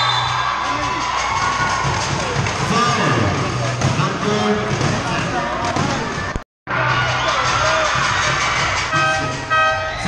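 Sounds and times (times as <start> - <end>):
crowd noise in gym: 0.0 - 10.0
short horn toots: 8.9 - 10.0.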